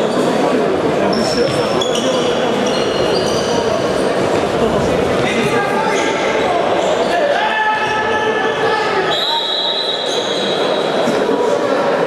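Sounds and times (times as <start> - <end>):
trainers squeaking on floor: 1.1 - 4.0
players shouting: 5.5 - 10.7.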